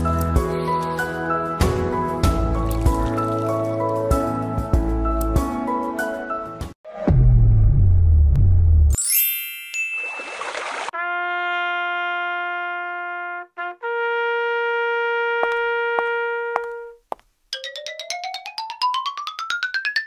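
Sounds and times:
held brass-like notes: 11.0s - 17.0s.

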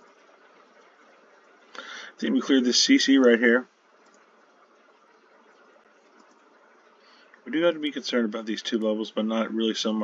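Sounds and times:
faint room hiss: 0.0s - 10.0s.

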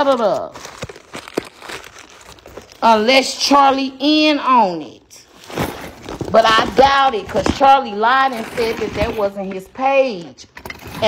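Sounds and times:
woman speaking: 0.0s - 0.6s, 2.8s - 5.3s, 6.3s - 11.0s
faint rustling and crinkling: 0.0s - 3.2s, 5.2s - 11.0s.

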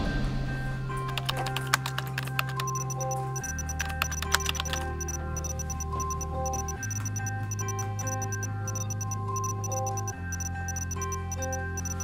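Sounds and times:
music of sustained notes: 0.0s - 12.0s
laptop keyboard typing: 1.0s - 12.0s.

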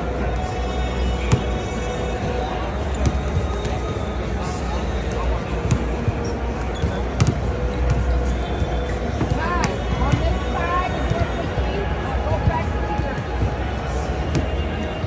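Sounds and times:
crowd chatter: 0.0s - 15.0s
basketballs bouncing on hardwood: 5.7s - 10.4s, 14.3s - 14.6s.

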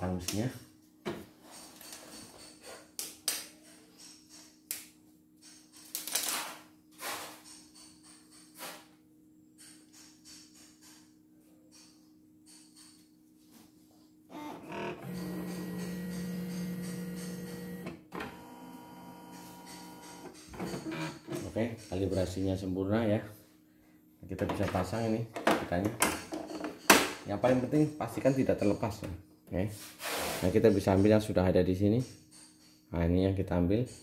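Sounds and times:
carriage motors buzzing: 14.3s - 21.4s.

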